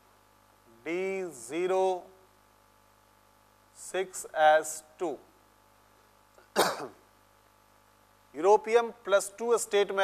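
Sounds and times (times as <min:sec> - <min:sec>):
man clearing his throat: 0:06.4 - 0:07.0.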